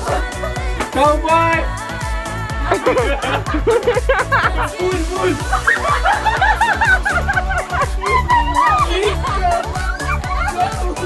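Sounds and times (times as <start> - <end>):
background music with thumping beat: 0.0 - 11.0
women laughing: 2.6 - 11.0.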